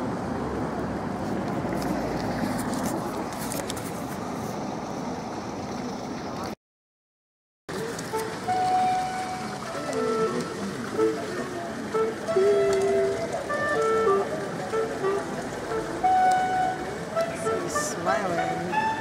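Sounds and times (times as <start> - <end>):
street traffic noise: 0.0 - 6.6, 7.7 - 19.0
simple melody of held notes: 8.1 - 19.0.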